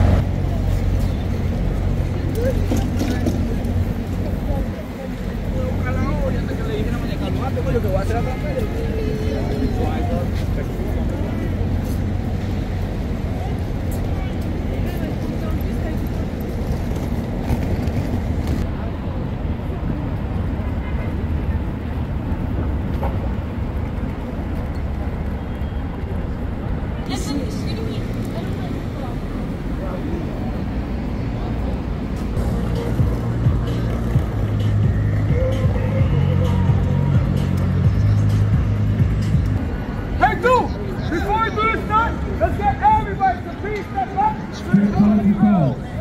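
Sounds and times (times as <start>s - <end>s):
traffic rumble: 0.0s - 46.0s
indistinct voices: 27.0s - 46.0s
music with heavy bass beat: 32.4s - 39.6s.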